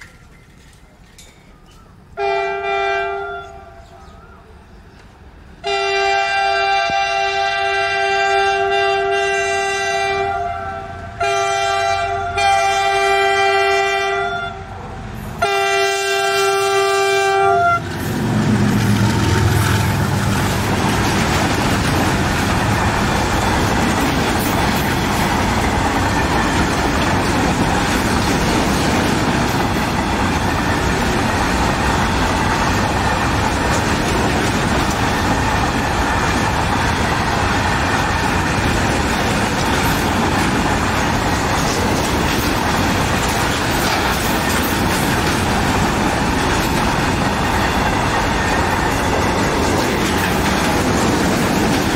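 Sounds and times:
locomotive horn blasts: 2.2 - 3.8, 5.6 - 14.8, 15.4 - 17.9
freight wagons rumbling past: 16.2 - 51.9.

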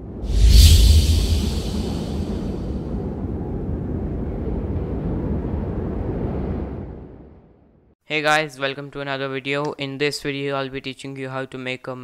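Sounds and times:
low cinematic rumble: 0.0 - 2.8.

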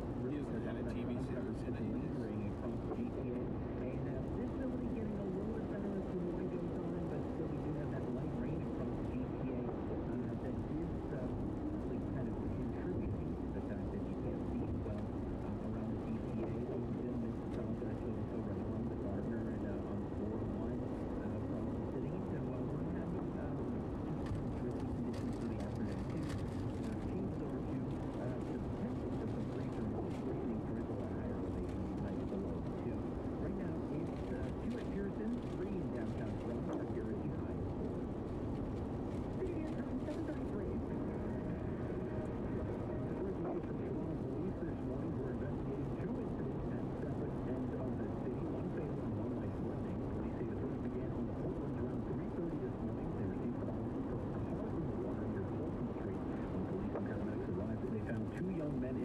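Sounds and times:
low-pitched engine noise: 0.0 - 59.0.

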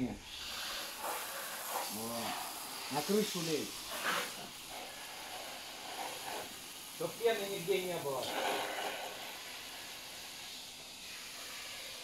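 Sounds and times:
hose spraying water on car: 0.0 - 12.0.

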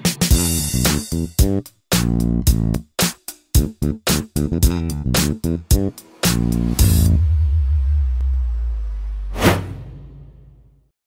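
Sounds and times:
deep bass intro music: 0.3 - 3.0, 3.6 - 10.8
whoosh sound effect: 5.9 - 10.7.

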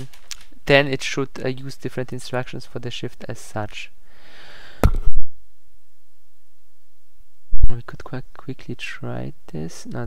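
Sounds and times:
soft breath: 4.0 - 4.9
loud low thump: 4.8 - 5.3.

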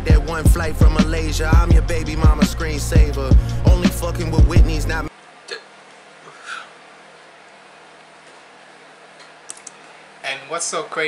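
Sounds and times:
rap song: 0.0 - 5.1.

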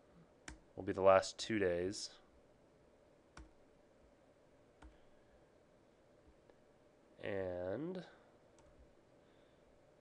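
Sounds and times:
computer mouse click: 3.4 - 3.6, 4.8 - 5.0.

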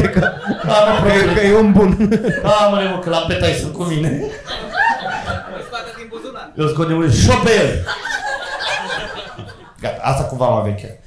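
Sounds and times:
men laughing: 0.0 - 3.2, 3.9 - 6.5, 7.5 - 9.8
men talking: 0.0 - 11.0.

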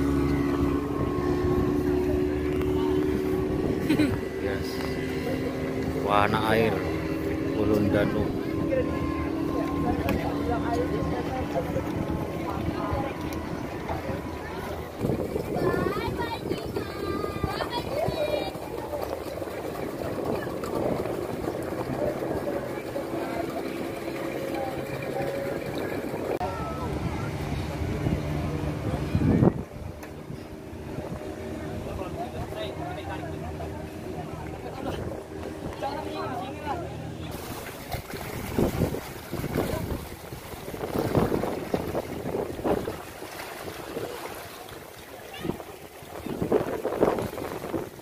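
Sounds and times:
boat engine running: 0.0 - 48.0
people talking: 0.6 - 30.4, 31.5 - 38.1, 38.8 - 41.5, 43.9 - 47.8
wind gusts on microphone: 11.2 - 24.0, 24.8 - 32.1, 37.3 - 48.0.

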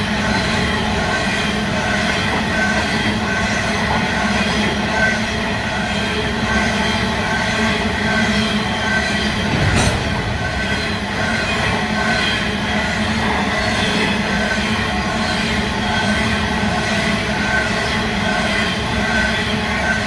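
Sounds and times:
train wheels rumbling on rails: 0.0 - 20.0.

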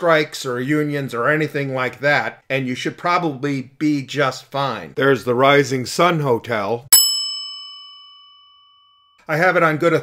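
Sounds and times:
bell ding ringing: 6.9 - 9.2.

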